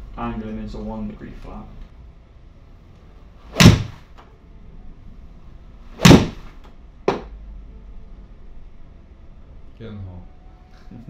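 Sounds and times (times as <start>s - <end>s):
golf club striking ball: 3.5s - 4.0s, 6.0s - 6.5s.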